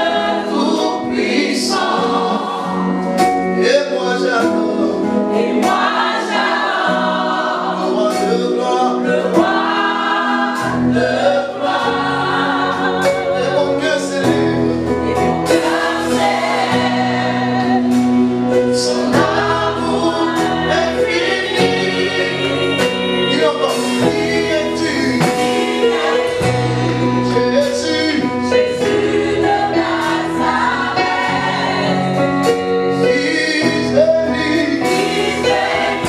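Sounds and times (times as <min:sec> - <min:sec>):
keyboard accompaniment: 0:00.0 - 0:36.0
man singing: 0:03.6 - 0:05.1, 0:07.9 - 0:09.2, 0:13.2 - 0:14.8, 0:18.6 - 0:25.5, 0:27.0 - 0:28.7, 0:32.9 - 0:35.1.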